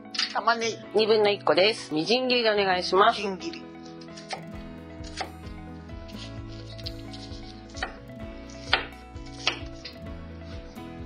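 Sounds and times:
background music: 0.0s - 11.0s
knife mincing on cutting board: 3.8s - 5.3s, 6.1s - 10.8s
knife knocking on board: 8.6s - 9.9s.

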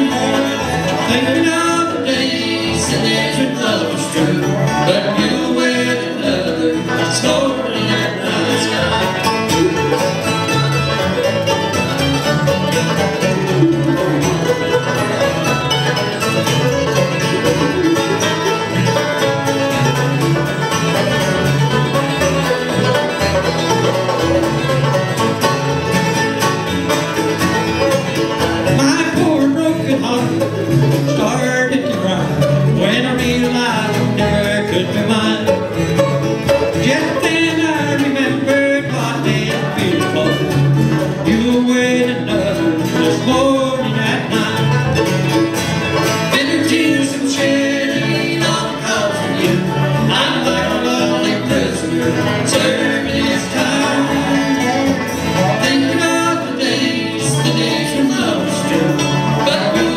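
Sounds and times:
acoustic guitar: 0.0s - 59.9s
banjo: 0.0s - 59.9s
dobro: 0.0s - 59.9s
fiddle: 0.0s - 59.9s
mandolin: 0.0s - 59.9s
upright bass: 0.0s - 59.9s.

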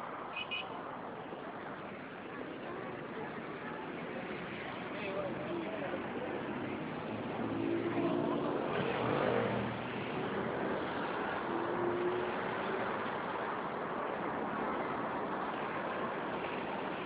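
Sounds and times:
street traffic noise: 0.0s - 17.0s.

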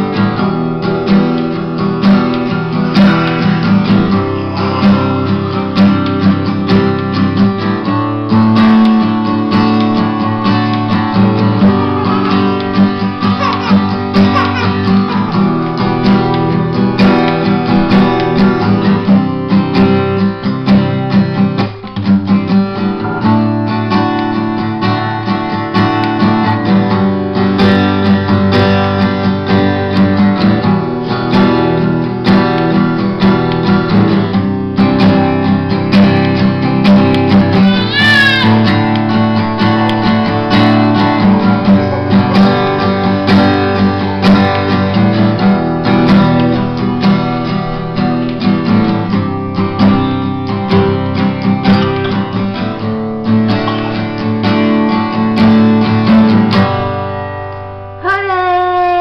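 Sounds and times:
acoustic guitar strummed in chords: 0.0s - 59.0s.

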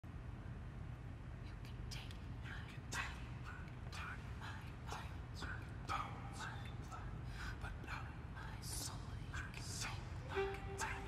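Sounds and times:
low steady hum: 0.0s - 11.0s
person whispering: 1.4s - 11.0s.

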